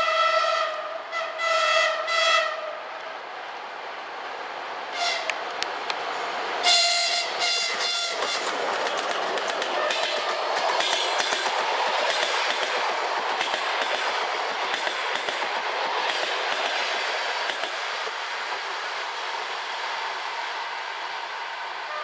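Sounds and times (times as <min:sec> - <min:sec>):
passenger train rolling past: 0:00.0 - 0:22.0
locomotive horn blasts: 0:05.0 - 0:05.4, 0:06.6 - 0:08.5
wheels clicking over rail joints: 0:07.3 - 0:18.8.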